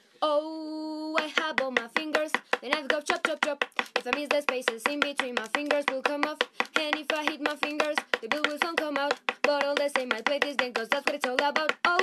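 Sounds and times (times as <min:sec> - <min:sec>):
knife tapping on wooden tabletop: 0:01.8 - 0:12.0.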